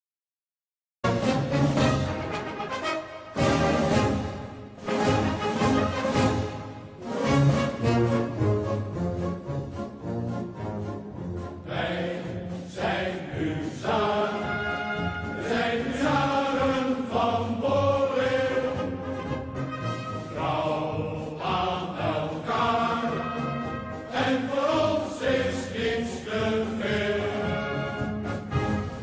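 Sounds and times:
choir singing long notes: 10.5s - 29.0s.

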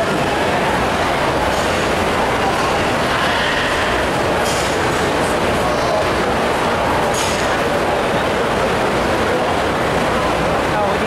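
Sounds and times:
crowd murmur: 0.0s - 11.0s.

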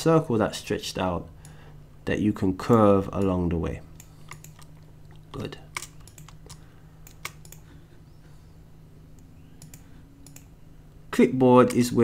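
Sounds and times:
faint low hum: 0.0s - 12.0s
mouse and keyboard clicks: 2.7s - 7.6s, 9.1s - 10.5s.

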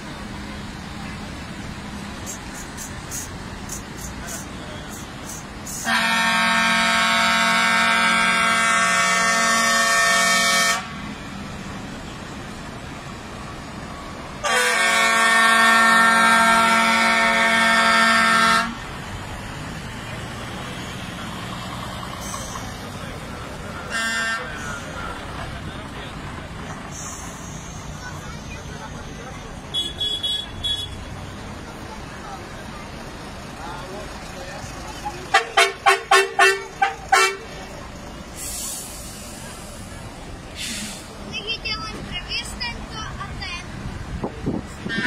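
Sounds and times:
passing vehicles: 0.0s - 45.0s
vehicle horn blasts: 5.8s - 11.0s, 14.4s - 18.8s, 23.9s - 24.7s, 29.7s - 31.1s, 35.3s - 37.5s.

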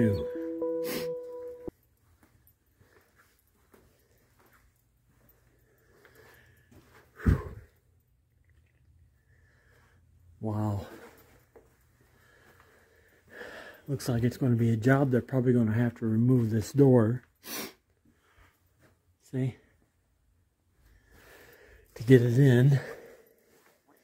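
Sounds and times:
person humming: 0.0s - 1.7s.

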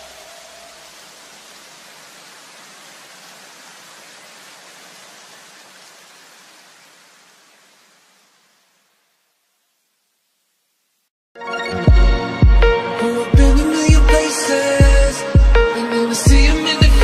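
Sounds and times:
hiss-like noise: 0.0s - 11.1s.

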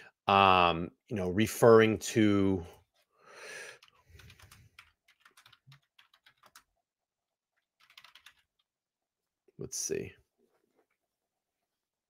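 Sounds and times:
typing on computer keyboard: 3.8s - 6.8s, 7.6s - 8.7s.

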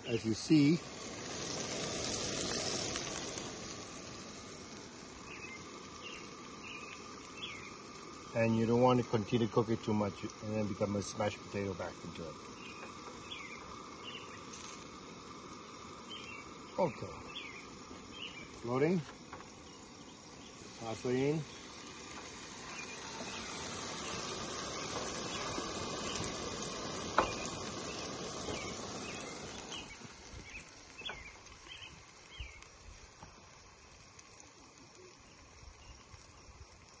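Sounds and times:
gnocchi sizzling in frying pan: 0.0s - 37.0s
bird chirps: 5.2s - 7.9s, 12.5s - 14.6s, 16.0s - 18.8s, 22.6s - 32.7s.

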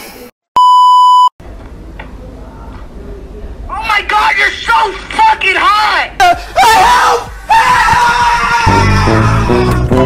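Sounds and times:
man screaming: 3.7s - 10.0s.

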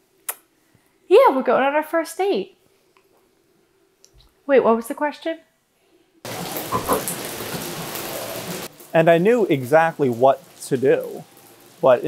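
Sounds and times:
steady rain falling: 6.2s - 12.0s.

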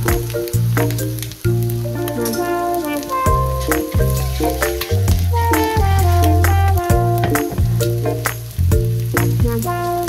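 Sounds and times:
background music with bass line: 0.0s - 10.0s
eggs sizzling in frying pan: 0.0s - 10.0s.

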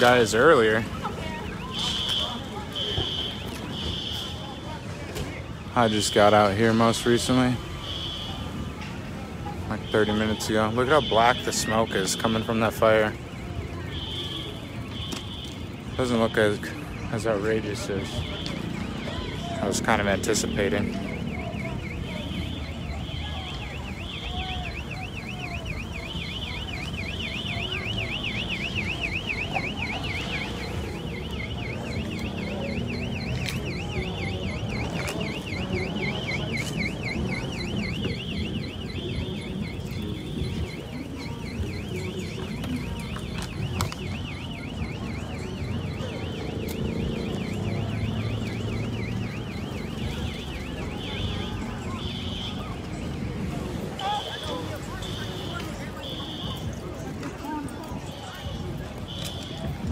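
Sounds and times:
car alarm warbling: 0.0s - 4.7s, 5.5s - 59.9s.

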